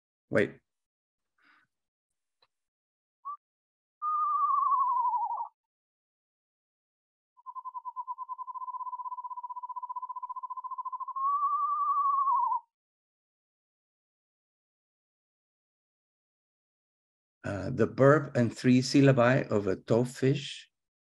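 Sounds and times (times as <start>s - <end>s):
owl descending whinny: 4.0s - 5.5s, 7.4s - 12.7s
owl quavering trill: 4.0s - 5.6s, 7.4s - 12.7s.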